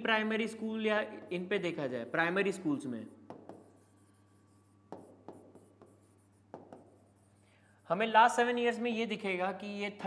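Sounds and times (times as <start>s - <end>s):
pen tapping and scratching on board: 3.2s - 7.3s.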